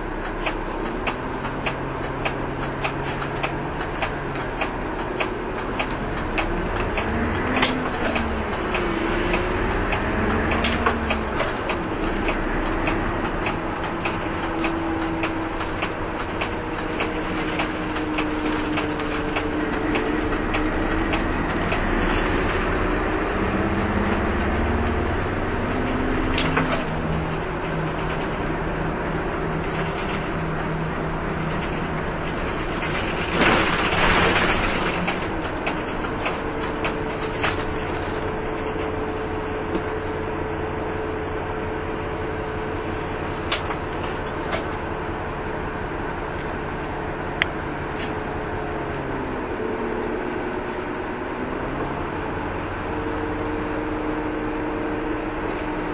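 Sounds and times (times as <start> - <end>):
bus engine drone: 0.0 - 55.9
road noise: 0.0 - 55.9.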